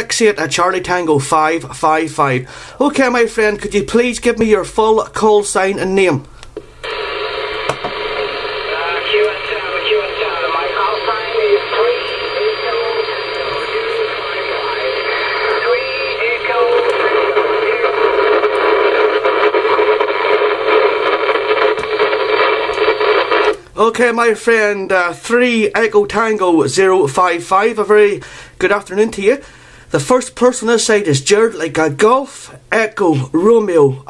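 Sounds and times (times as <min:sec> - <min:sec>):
radio static and hiss: 0:06.7 - 0:24.7
distant radio voice: 0:06.9 - 0:20.8.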